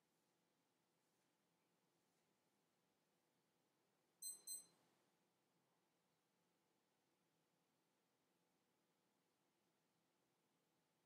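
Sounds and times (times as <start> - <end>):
high-pitched beeps: 4.2 - 4.7.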